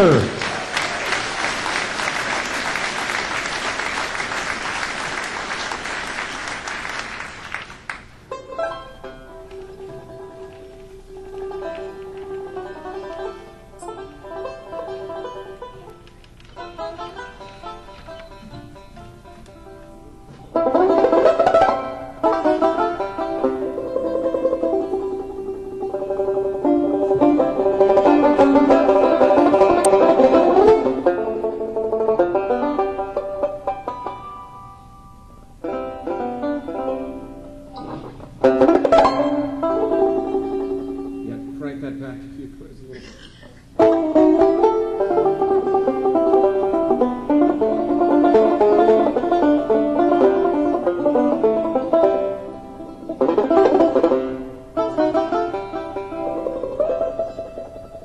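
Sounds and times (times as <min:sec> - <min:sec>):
banjo playing classical piece: 0:00.0 - 0:42.8, 0:43.6 - 0:58.0.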